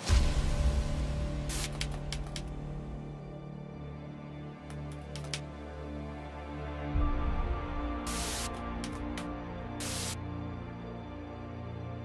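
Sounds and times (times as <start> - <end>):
dark background music with low drone: 0.0 - 12.0
short sharp typing clicks: 4.7 - 5.4.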